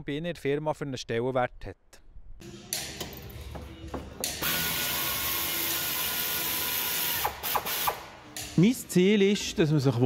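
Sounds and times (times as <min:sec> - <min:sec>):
pneumatic wrench running: 0:04.2 - 0:08.6.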